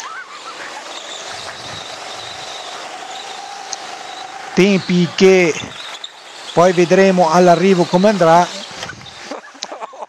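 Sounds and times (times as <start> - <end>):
tyre noise: 0.0 - 9.6
go-kart motor whining: 0.0 - 9.7.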